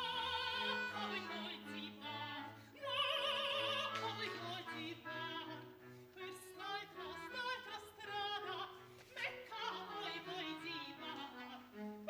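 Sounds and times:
operatic singing with vibrato: 0.0s - 12.0s
small classical ensemble: 0.0s - 12.0s.

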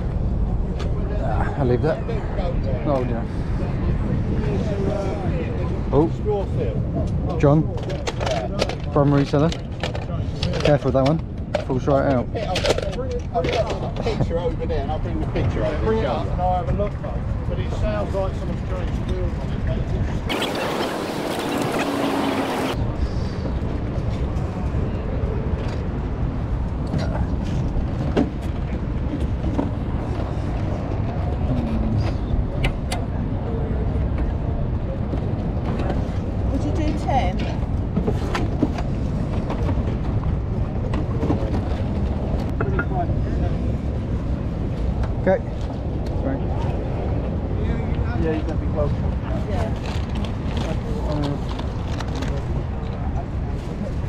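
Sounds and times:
faint voices: 31.0s - 37.7s.

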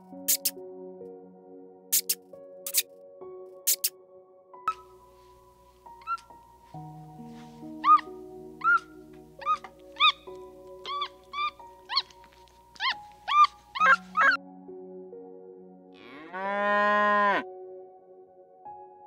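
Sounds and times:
soft background music: 0.0s - 19.0s
squeaky chirps: 0.3s - 0.6s, 1.9s - 2.8s, 3.7s - 3.9s, 6.0s - 6.4s, 7.8s - 14.4s
cow mooing: 16.0s - 17.5s.

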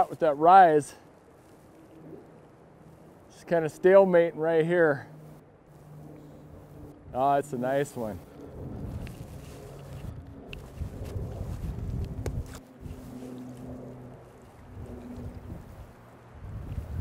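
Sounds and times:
wind rumbling on microphone: 5.7s - 17.0s.

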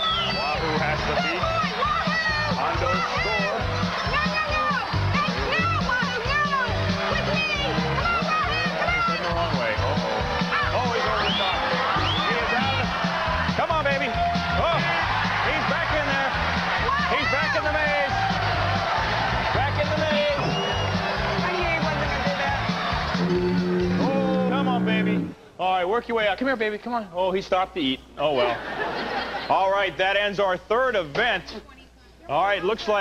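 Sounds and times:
audience shouting and cheering: 0.0s - 25.3s
game show music with steady beat: 0.0s - 25.6s.

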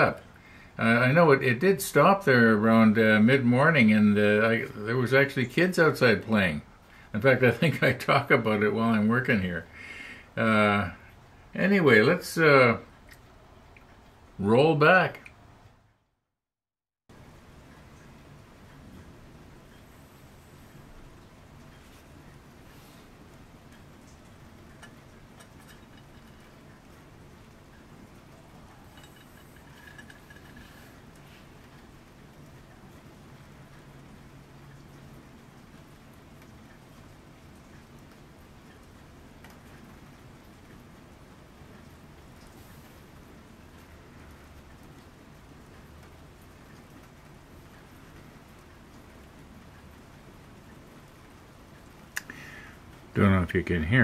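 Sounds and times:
faint rain falling: 0.0s - 16.2s, 17.1s - 54.0s.

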